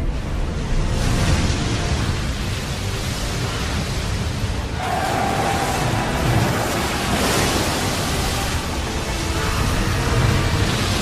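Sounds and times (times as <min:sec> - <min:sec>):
sea water crashing and rushing: 0:00.0 - 0:11.0.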